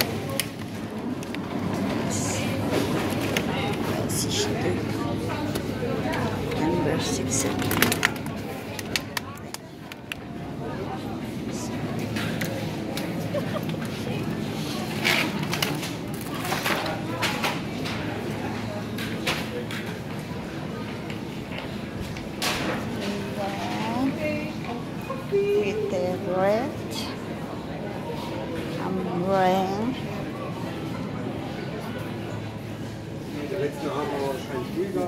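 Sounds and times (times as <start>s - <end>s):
murmur of voices: 0.0s - 35.0s.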